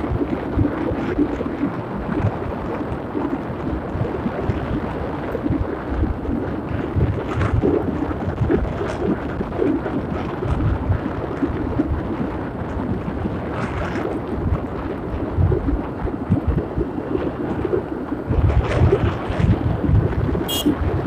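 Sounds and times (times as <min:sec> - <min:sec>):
motorcycle engine and road noise: 0:00.0 - 0:21.0
wind buffeting microphone: 0:00.0 - 0:21.0.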